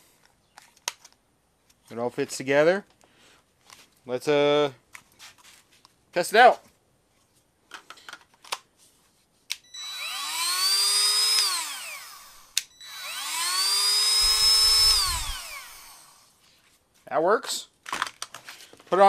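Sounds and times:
rotary tool motor whining: 0:09.7 - 0:16.3.

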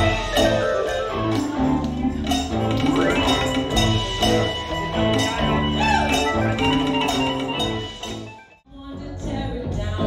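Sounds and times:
live band playing: 0:00.0 - 0:08.6.

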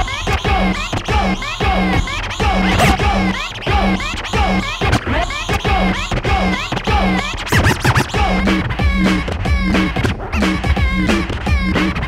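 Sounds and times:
music beat: 0:00.0 - 0:12.0
vinyl record scratching: 0:00.0 - 0:12.0.

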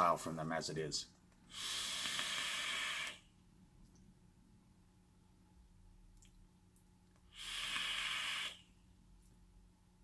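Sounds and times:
air hissing through e-cigarette: 0:01.5 - 0:03.3, 0:07.2 - 0:08.8.

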